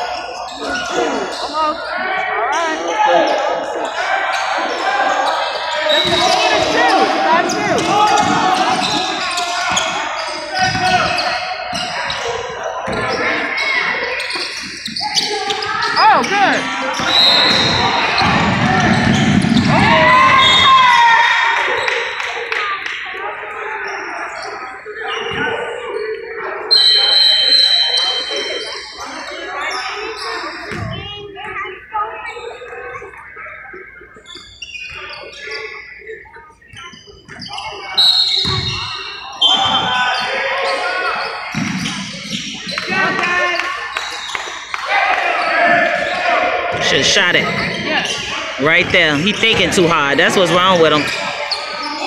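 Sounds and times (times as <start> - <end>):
shoe squeals: 0.0 - 22.2, 23.5 - 52.0
people calling out: 0.0 - 22.3.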